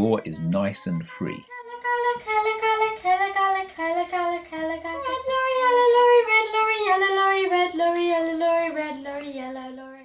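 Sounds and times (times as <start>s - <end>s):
girl singing vocal warm-up: 0.4s - 10.0s.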